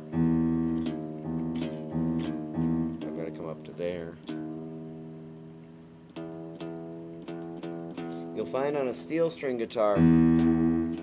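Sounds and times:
nylon guitar string plucked: 0.0s - 11.0s.

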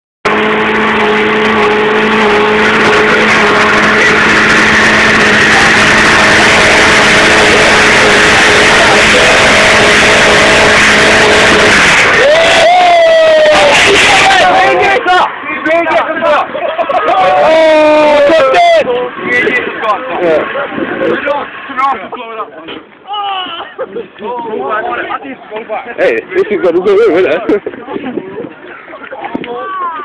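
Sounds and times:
car engine revving high: 0.2s - 22.4s.

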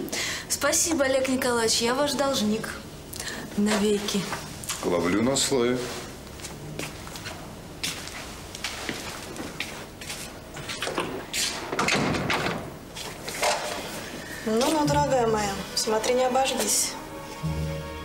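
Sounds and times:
door opening and shutting: 11.7s - 12.7s.

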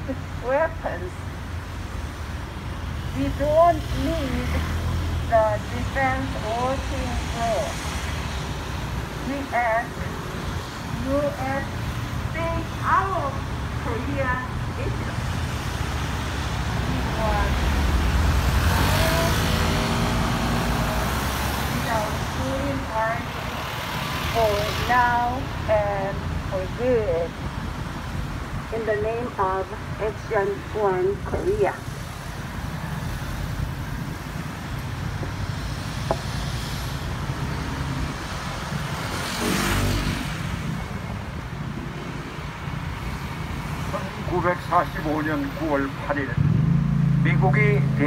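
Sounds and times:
cars passing: 0.0s - 48.0s
traffic rumble: 0.0s - 48.0s.

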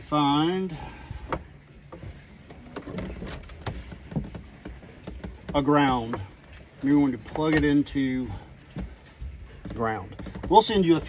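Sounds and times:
wires clicking and rattling: 2.0s - 11.0s.

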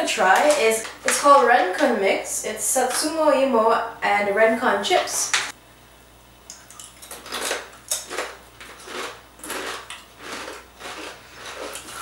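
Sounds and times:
crisp chips crunching: 6.8s - 12.0s.

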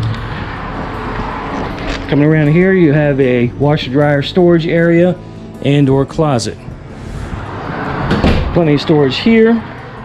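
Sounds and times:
road traffic rushing: 0.0s - 10.0s.

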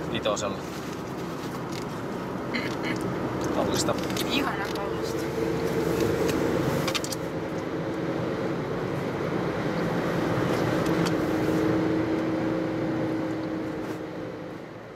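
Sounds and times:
car engine and tyre noise: 0.0s - 14.9s.

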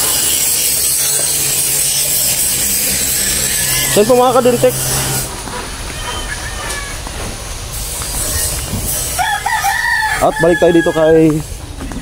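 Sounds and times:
steady outdoor background: 0.0s - 12.0s
rooster crowing: 2.3s - 5.3s, 9.2s - 11.2s.

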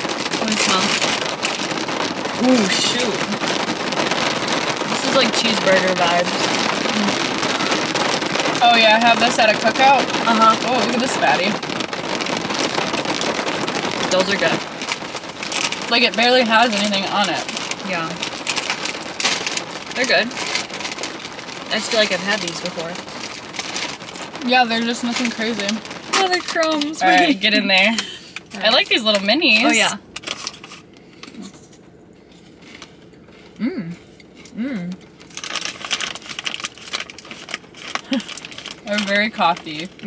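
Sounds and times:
potato chip crunching: 0.0s - 31.8s, 32.4s - 40.0s
plastic snack bag crinkling: 0.0s - 40.0s
rain on car roof: 0.0s - 40.0s.

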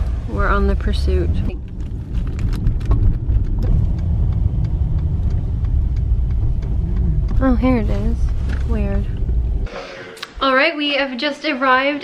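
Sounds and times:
car engine and tyres rumbling: 0.0s - 9.7s
crackling clicks: 1.4s - 7.5s.

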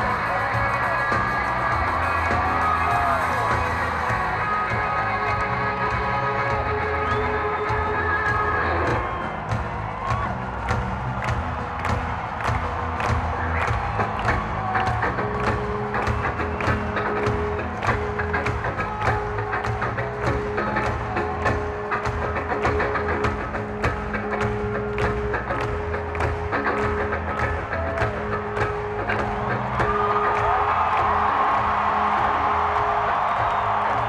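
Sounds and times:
crowd cheering: 0.0s - 34.0s
live rock band music: 0.0s - 34.0s.

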